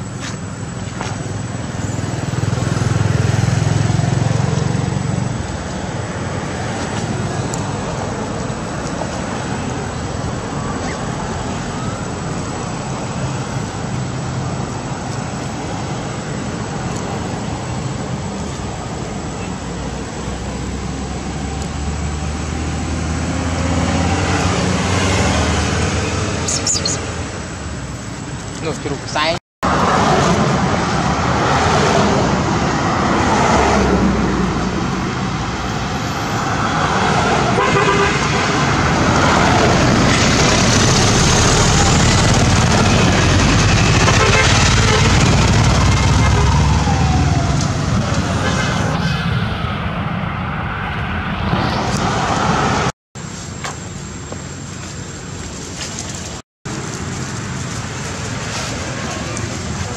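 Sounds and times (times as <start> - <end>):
motor traffic: 0.0 - 59.9.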